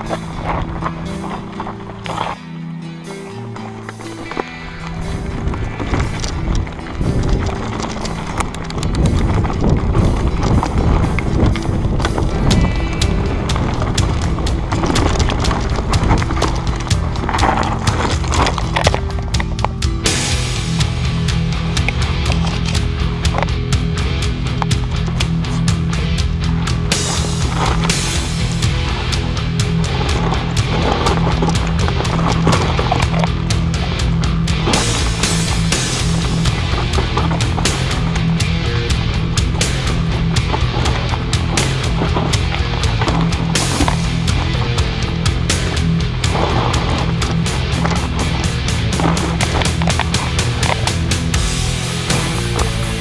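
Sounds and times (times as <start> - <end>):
bike tyres rumbling on dirt: 0.0 - 2.6, 3.4 - 53.0
music with drum beat and bass: 0.0 - 53.0
bike rattling and knocking: 3.8 - 53.0.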